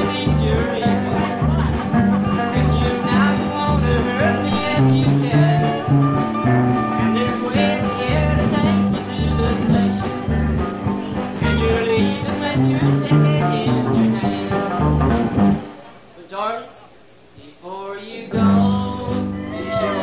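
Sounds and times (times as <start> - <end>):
twangy electric guitar lead: 0.0 - 9.0, 9.7 - 15.8
bass notes: 0.0 - 15.8.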